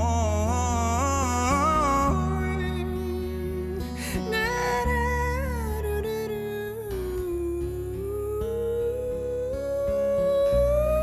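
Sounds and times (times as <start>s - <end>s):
acoustic guitar: 0.0s - 11.0s
man singing long wordless note: 0.0s - 11.0s.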